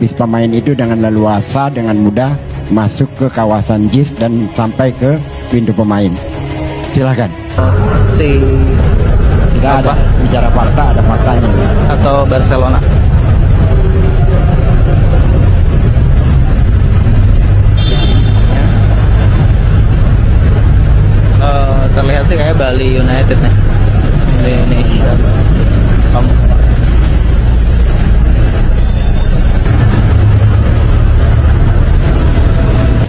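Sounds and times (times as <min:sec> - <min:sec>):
low rumble of vehicles: 0:00.0 - 0:33.0
bus pulling in: 0:06.3 - 0:33.0.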